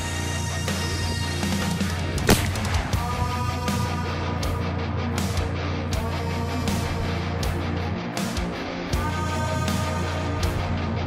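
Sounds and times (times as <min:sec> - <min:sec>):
loud background music: 0:00.0 - 0:11.0
rifle shot: 0:02.2 - 0:03.2
bullet striking armor plate: 0:02.3 - 0:02.9.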